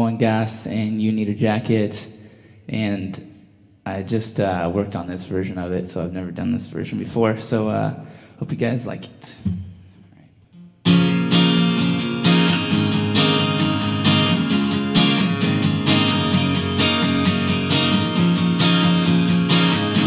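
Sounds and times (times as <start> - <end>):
acoustic guitar strummed chords: 10.6 - 20.0.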